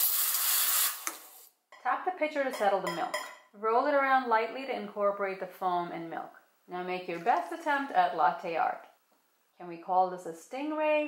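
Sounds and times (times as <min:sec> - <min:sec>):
steam wand hissing: 0:00.0 - 0:01.3.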